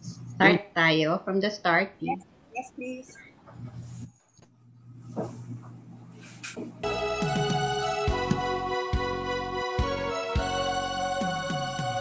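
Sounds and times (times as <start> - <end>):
low steady hum: 0.0 - 6.9.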